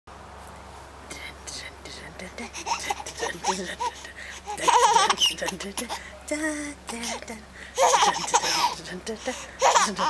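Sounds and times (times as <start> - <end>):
whispered voice: 1.1 - 3.9.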